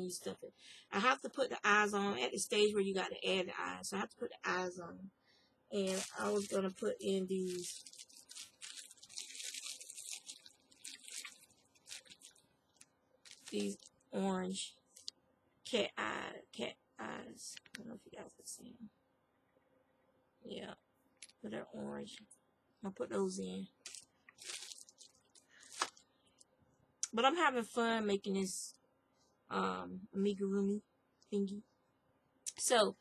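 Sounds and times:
plastic bag crinkling: 0:05.8 - 0:14.0, 0:23.8 - 0:26.0.

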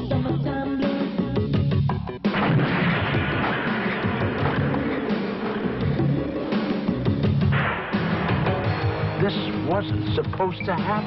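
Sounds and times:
film trailer score: 0:02.2 - 0:11.0
loud boom: 0:02.3 - 0:09.2.

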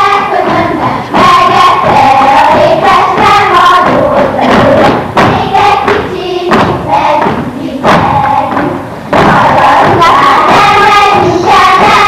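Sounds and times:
girls singing in chorus: 0:00.0 - 0:12.0
feet stamping on wooden floor: 0:00.4 - 0:12.0.

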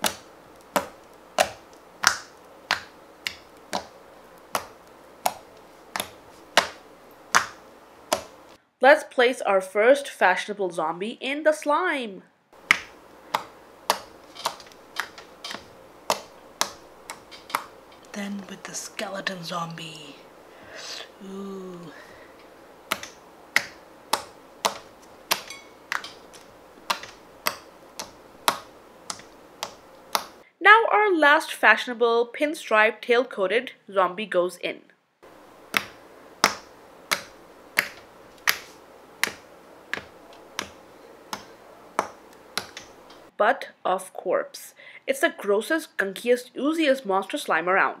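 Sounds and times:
slime popping under fingertips: 0:12.6 - 0:17.8, 0:22.9 - 0:30.4.

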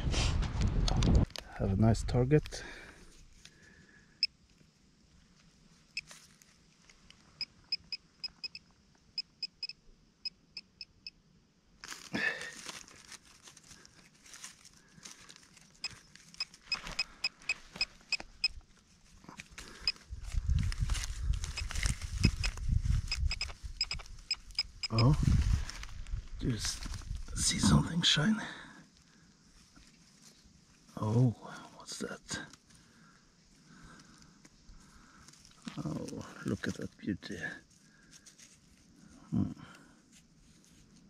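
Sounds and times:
soil scuffing and rustling: 0:05.1 - 0:07.4, 0:11.8 - 0:28.3, 0:29.4 - 0:31.3, 0:33.5 - 0:36.9, 0:37.6 - 0:39.2, 0:40.0 - 0:41.0
metal detector pinpointer beeping: 0:07.4 - 0:11.2, 0:15.8 - 0:18.6, 0:21.5 - 0:25.2.

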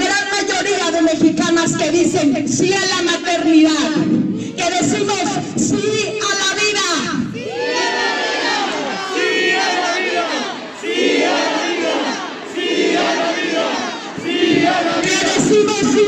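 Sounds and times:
crowd shouting together: 0:07.3 - 0:16.0.

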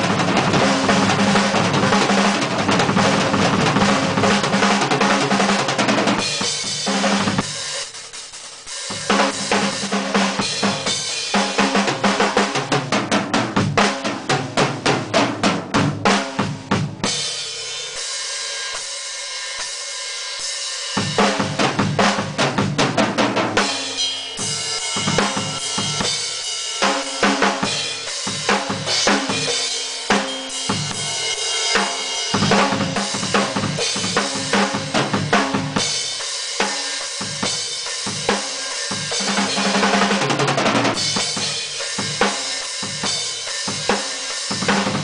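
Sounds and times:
drum kit playing fast pattern: 0:00.0 - 0:45.0
cymbals ringing: 0:23.7 - 0:26.6.

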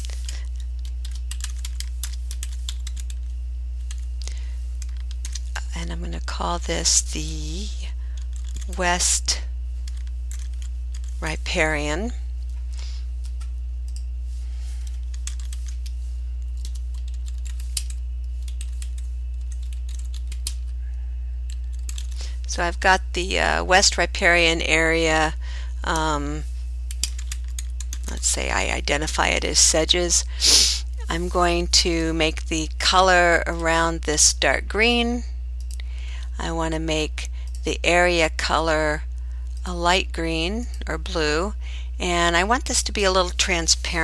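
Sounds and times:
low steady hum: 0:00.0 - 0:44.0
typing on computer keyboard: 0:00.2 - 0:03.2, 0:04.8 - 0:05.5, 0:08.2 - 0:08.8, 0:09.8 - 0:11.2, 0:14.8 - 0:15.9, 0:16.5 - 0:20.7, 0:21.5 - 0:22.2, 0:26.9 - 0:28.2.

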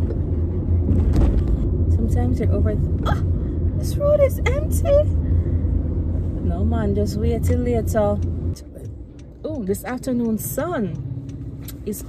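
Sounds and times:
car cabin hum while driving: 0:00.0 - 0:12.0
woman talking: 0:01.9 - 0:05.2, 0:06.4 - 0:11.0, 0:11.7 - 0:12.0.

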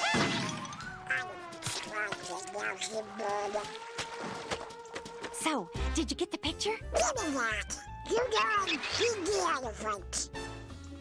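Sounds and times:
orchestral cartoon music: 0:00.7 - 0:11.0.

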